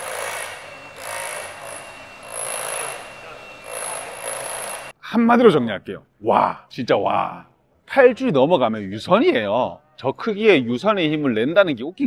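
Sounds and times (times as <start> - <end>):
rotary hammer drilling into concrete: 0.0 - 4.9.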